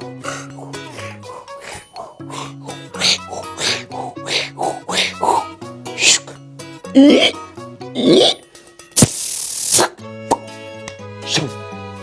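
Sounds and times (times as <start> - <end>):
background music: 0.0 - 12.0
sharp cartoon pop: 9.0 - 10.5.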